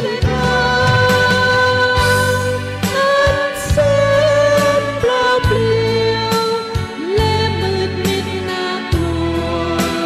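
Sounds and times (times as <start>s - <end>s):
bass line: 0.0s - 10.0s
light percussion: 0.0s - 10.0s
person singing worship song: 0.0s - 10.0s.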